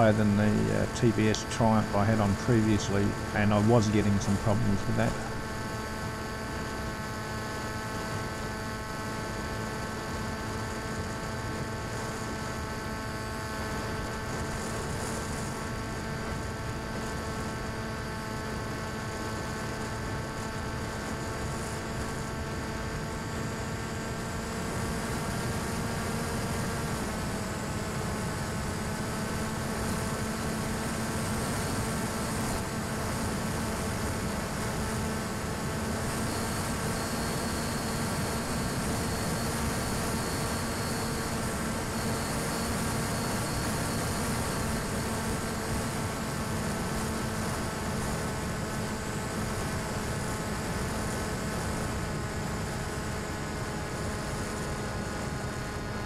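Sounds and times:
model plane motor droning: 5.1s - 56.0s.

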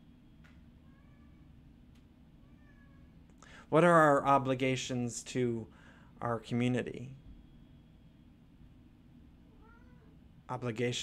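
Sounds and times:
cat meowing: 0.8s - 1.5s, 2.4s - 3.2s, 9.5s - 10.2s.

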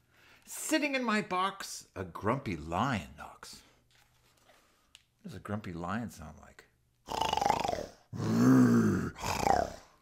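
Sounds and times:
man imitating lion growl: 7.1s - 10.0s.

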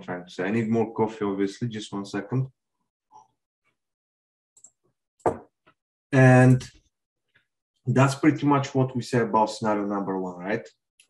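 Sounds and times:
coffee mug knocking on desk: 5.3s - 5.5s.

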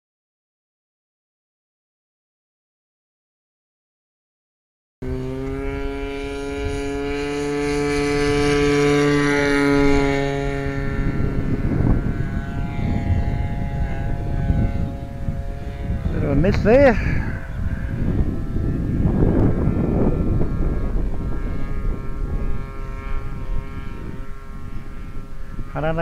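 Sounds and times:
model aircraft engine: 5.0s - 26.0s
wind noise on microphone: 5.0s - 26.0s.

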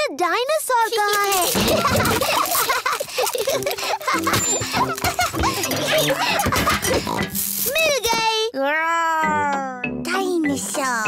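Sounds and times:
toys clattering: 0.8s - 8.4s
cartoon children giggling: 1.3s - 7.3s
background music: 3.3s - 7.8s, 9.2s - 11.0s.

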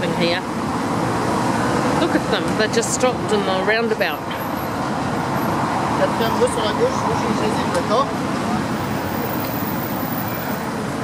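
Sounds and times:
traffic rumbling past: 0.0s - 11.0s.

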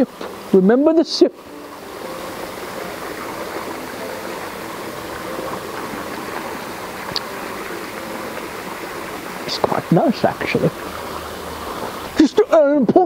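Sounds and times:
steady rushing outdoor noise: 0.0s - 13.0s.

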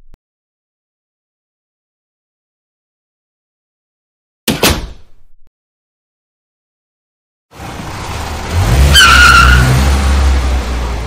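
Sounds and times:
tyre squeal: 8.8s - 9.8s.

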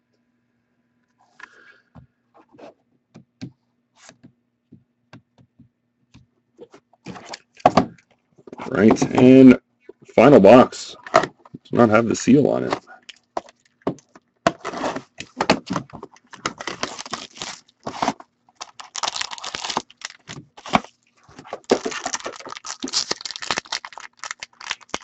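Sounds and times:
cardboard tearing and crinkling: 14.5s - 25.0s.

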